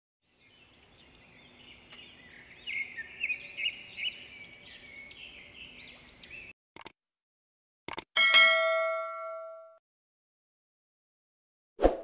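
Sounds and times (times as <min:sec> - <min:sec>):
birds chirping: 0:00.2 - 0:06.6.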